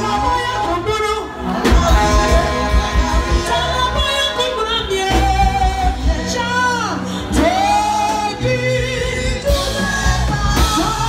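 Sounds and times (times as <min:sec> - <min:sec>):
bass line: 0:00.0 - 0:11.0
keyboard: 0:00.0 - 0:11.0
person singing: 0:00.0 - 0:11.0.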